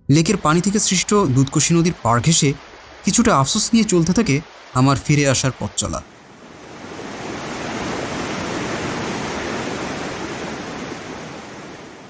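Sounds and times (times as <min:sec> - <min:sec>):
water rushing in mountain stream: 0:00.0 - 0:12.0.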